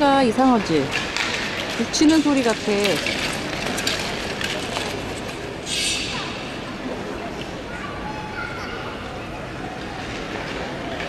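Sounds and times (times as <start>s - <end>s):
arena noise: 0.0s - 11.0s
skate blades scraping ice: 0.5s - 6.4s.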